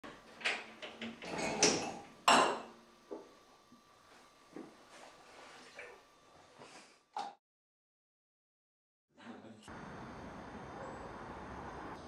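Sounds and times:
dishes and racks clunking: 0.4 - 2.8.

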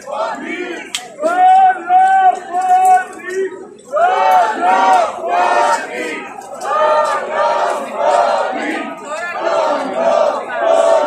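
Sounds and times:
crowd of protesters chanting: 0.0 - 11.0.

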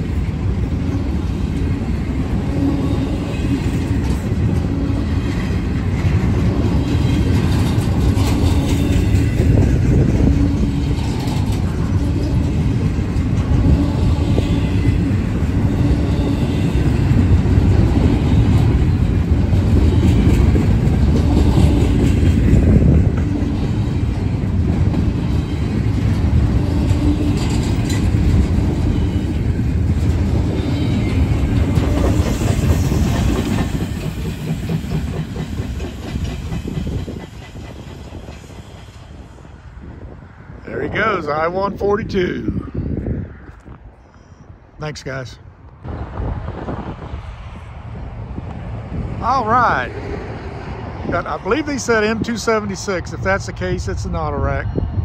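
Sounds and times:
rail clicks: 0.0 - 39.7
freight train rumbling past: 0.0 - 55.0.

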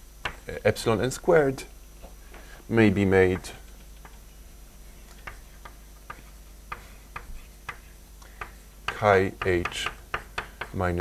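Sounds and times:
chalk tapping on blackboard: 5.2 - 11.0.

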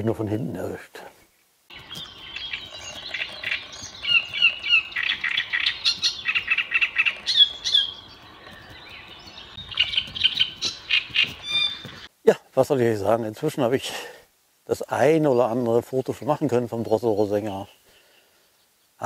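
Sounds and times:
warbler singing harsh chattering: 1.7 - 12.1.

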